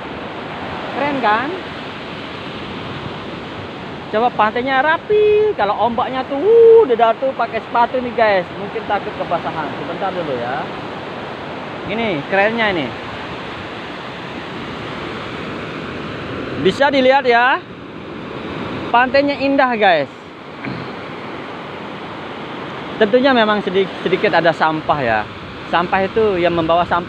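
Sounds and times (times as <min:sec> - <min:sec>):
waves washing on beach: 0:00.0 - 0:27.0.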